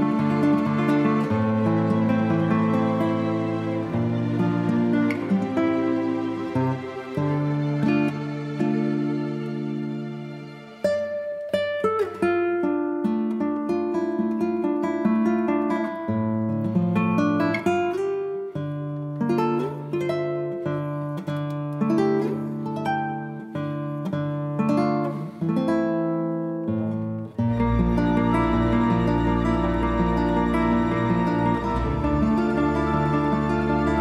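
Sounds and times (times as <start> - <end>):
acoustic guitar picking a melody: 0.0 - 34.0.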